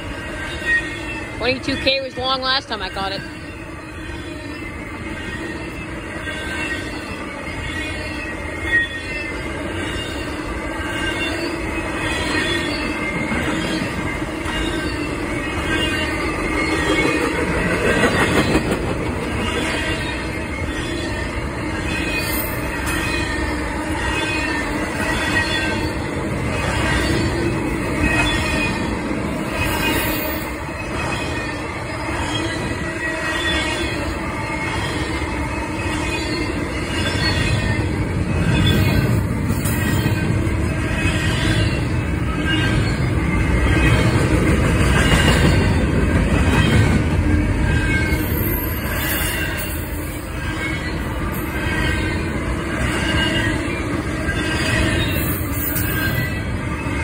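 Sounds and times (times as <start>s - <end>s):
rumble of wheels on rail: 0.0s - 57.0s
wheel squeal: 29.5s - 44.3s, 47.6s - 56.5s.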